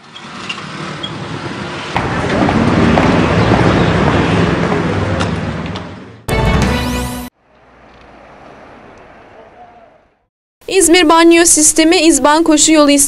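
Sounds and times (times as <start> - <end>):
motor vehicle running: 0.0 - 6.3, 7.4 - 10.3
street noise: 0.0 - 13.0.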